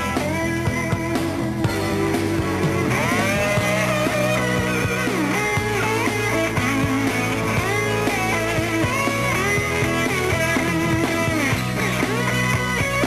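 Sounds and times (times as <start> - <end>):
lead electric guitar: 0.0 - 13.0
rock band playing: 0.0 - 13.0.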